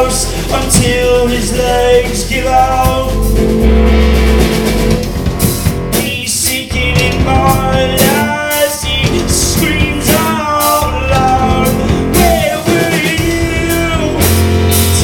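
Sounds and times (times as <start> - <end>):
drum kits: 0.0 - 15.0
rock band playing loudly: 0.0 - 15.0
heavy low note: 2.6 - 6.1
electric guitar: 2.9 - 6.1.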